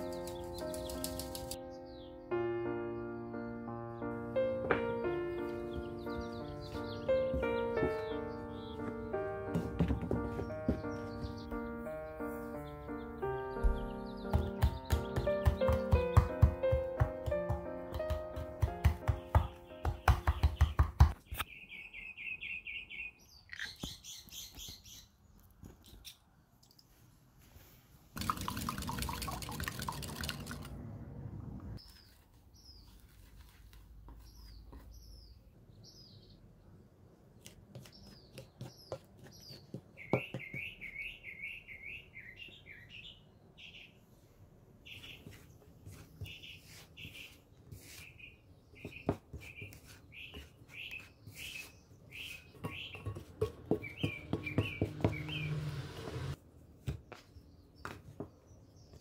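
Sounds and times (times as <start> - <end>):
low hum: 30.2 - 31.8.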